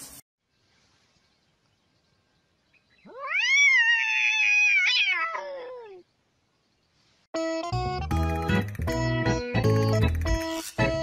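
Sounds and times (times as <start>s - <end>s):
cat meowing: 3.1s - 6.0s.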